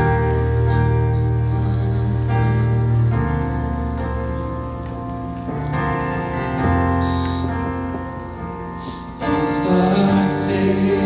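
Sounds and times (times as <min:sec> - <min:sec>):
bell-like keyboard chords: 0:00.0 - 0:11.0.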